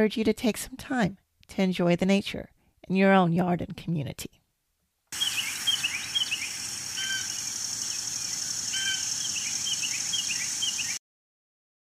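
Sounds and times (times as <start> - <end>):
birds chirping: 5.2 - 11.0
steady high hiss: 5.2 - 11.0.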